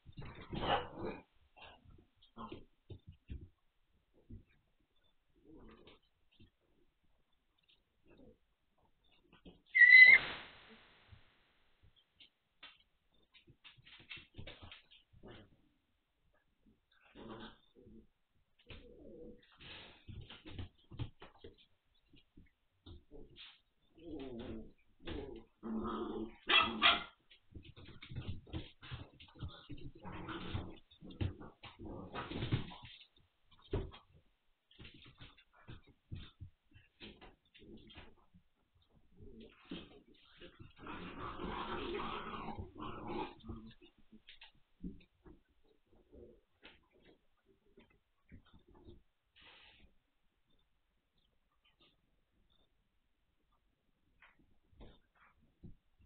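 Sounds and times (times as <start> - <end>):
puppies grumbling and whining: 9.4 - 10.2
puppies scuffling: 11.8 - 15.6, 26.6 - 49.1.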